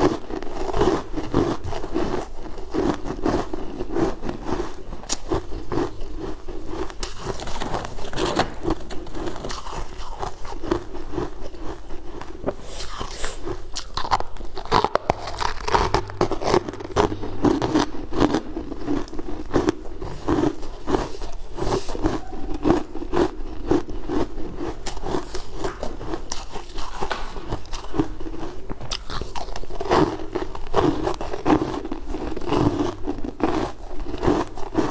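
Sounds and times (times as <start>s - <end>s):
crunching frozen ice balls: 0.0s - 34.9s.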